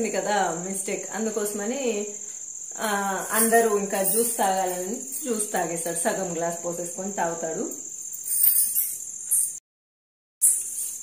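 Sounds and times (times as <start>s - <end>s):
woman speaking: 0.0s - 2.2s, 2.8s - 7.8s.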